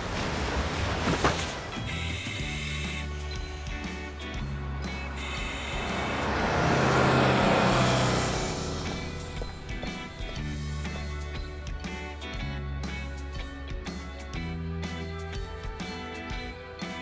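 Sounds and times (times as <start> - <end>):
background music: 1.6 - 17.0
bus passing close by: 2.7 - 11.6.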